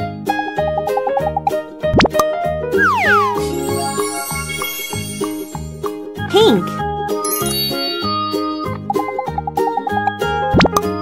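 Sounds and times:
cartoon plops: 2.8 - 3.5
children's music with beat: 2.8 - 10.3.

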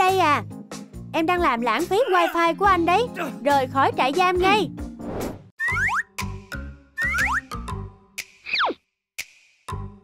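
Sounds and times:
playful background music: 0.0 - 10.0.

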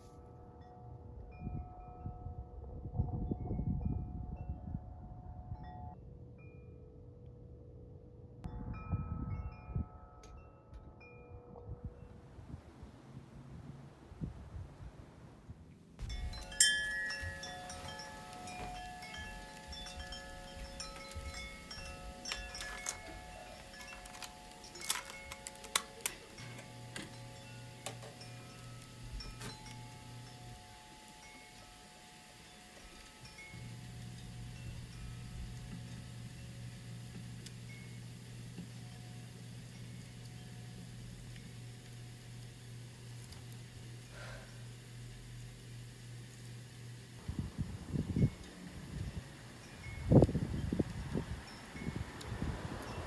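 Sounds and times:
low steady hum: 0.0 - 53.0
chime-like ringing tones: 16.0 - 36.6.

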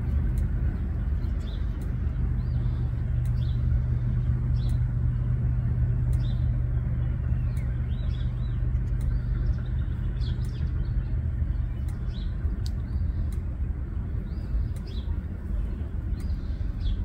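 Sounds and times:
low rumble and hum: 0.0 - 17.0
small birds chirping: 0.0 - 17.0.

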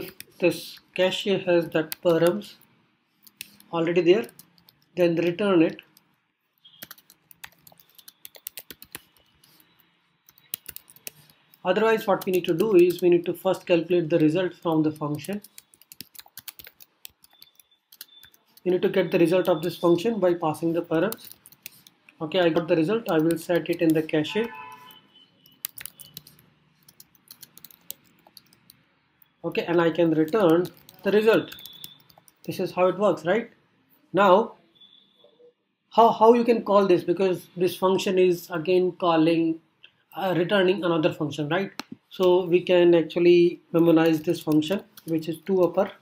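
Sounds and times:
keyboard typing: 0.0 - 33.0, 43.8 - 46.0.

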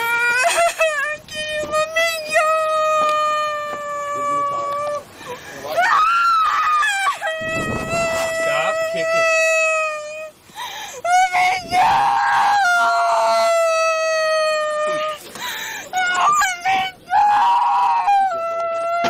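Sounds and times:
woman crying and screaming: 0.0 - 5.0, 5.6 - 15.2, 15.8 - 19.0.

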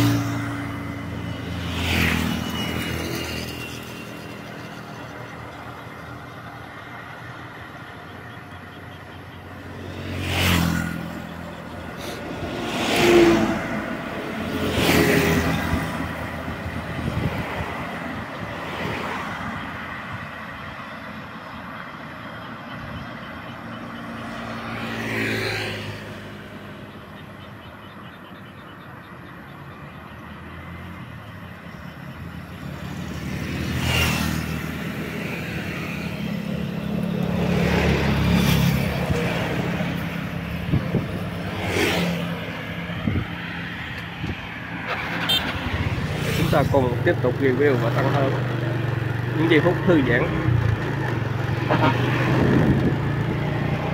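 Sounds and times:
low hum of traffic: 0.0 - 53.9
motorcycles passing: 0.0 - 53.9.

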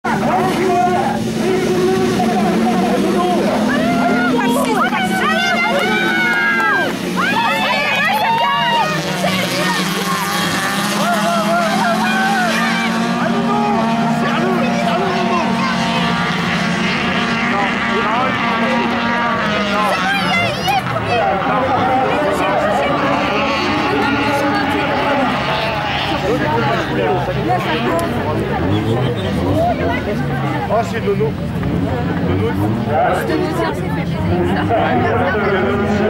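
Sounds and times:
race car engines humming: 0.0 - 36.0
voices: 0.0 - 36.0.

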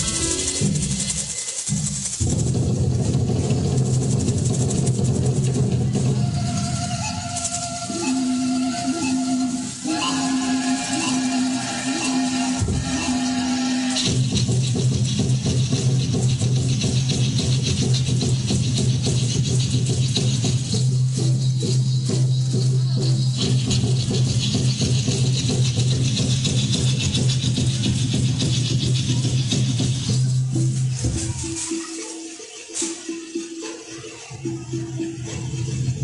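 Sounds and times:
rattles shaking: 0.0 - 8.1, 13.9 - 34.1.

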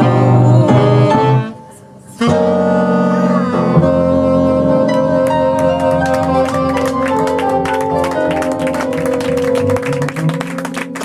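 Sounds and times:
double bass: 0.0 - 11.0
piano: 0.0 - 11.0
saxophones: 0.0 - 11.0.

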